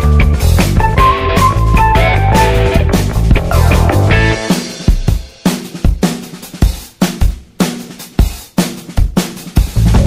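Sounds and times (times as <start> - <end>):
background rock music drums: 0.0 - 10.0.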